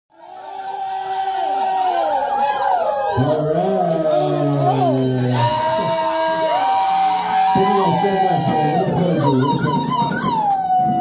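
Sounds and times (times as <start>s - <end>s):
crowd cheering and whooping: 0.1s - 11.0s.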